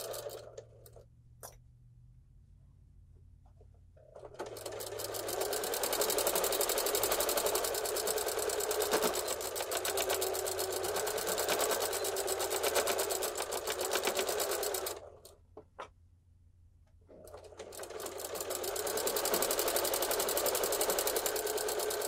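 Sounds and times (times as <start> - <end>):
electric sewing machine stitching: 0.0 - 0.6, 4.2 - 15.3, 17.1 - 22.0.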